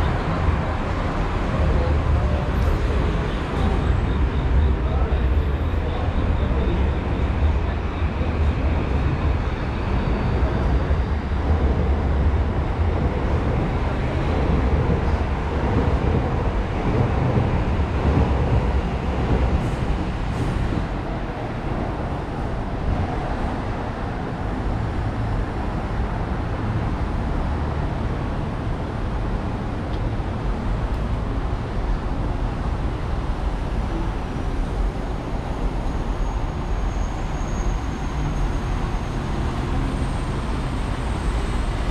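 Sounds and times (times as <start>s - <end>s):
city street noise: 0.0s - 41.9s
elevated train rumbling: 0.0s - 41.9s.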